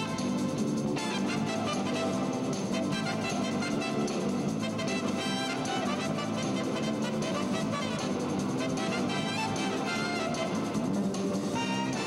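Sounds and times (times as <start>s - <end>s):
jazz big band playing: 0.0s - 12.0s.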